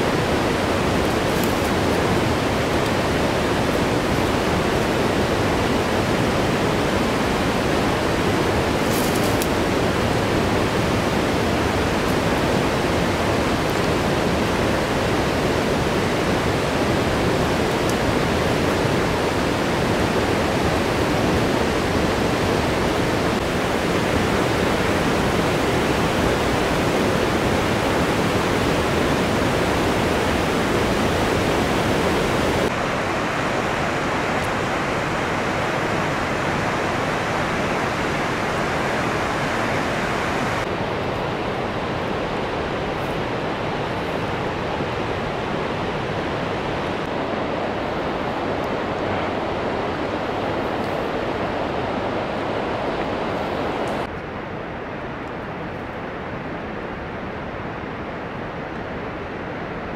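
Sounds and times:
river water rushing: 0:00.0 - 0:59.9.

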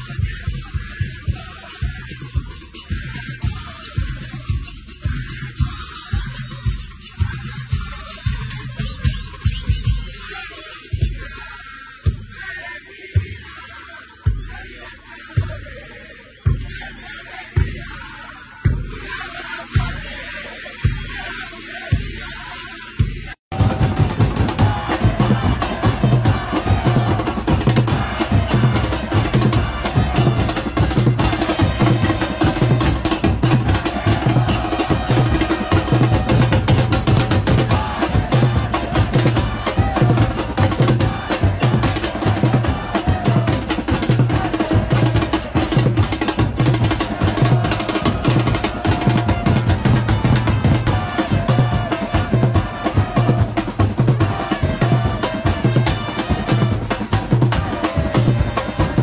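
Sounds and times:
bass drums pounding: 0:00.0 - 0:05.8, 0:23.0 - 0:59.0
crowd chanting: 0:00.0 - 0:59.0.

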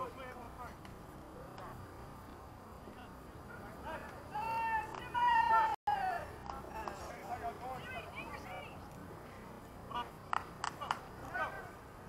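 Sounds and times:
people yelling high-pitched: 0:04.3 - 0:06.3.

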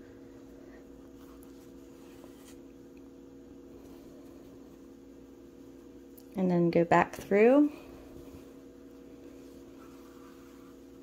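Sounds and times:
steady low hum: 0:00.0 - 0:11.0
yarn rustling and scratching: 0:09.2 - 0:11.0.

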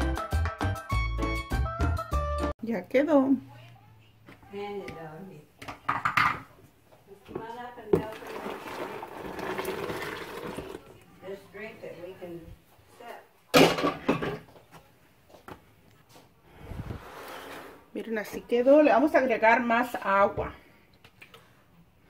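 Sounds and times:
liquid pouring and splashing: 0:08.0 - 0:11.0.

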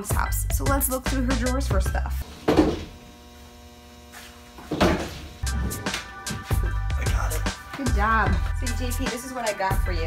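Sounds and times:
electrical mains hum: 0:02.2 - 0:06.1.

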